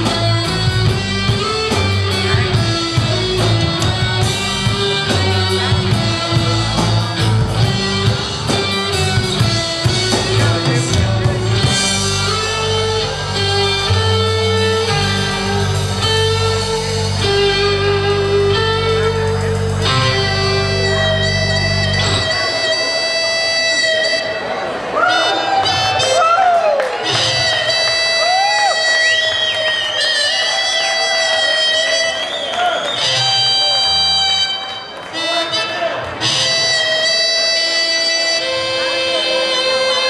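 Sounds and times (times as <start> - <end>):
heavy low bass: 0.0 - 23.7
lead guitar pitch bends: 0.0 - 24.7
live rock band playing: 0.0 - 40.0.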